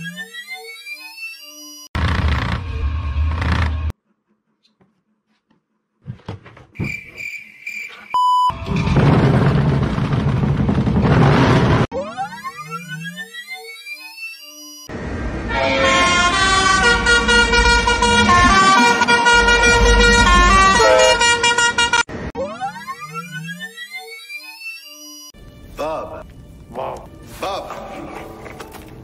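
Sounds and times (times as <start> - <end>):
locomotive air horn: 15.4 - 22.1.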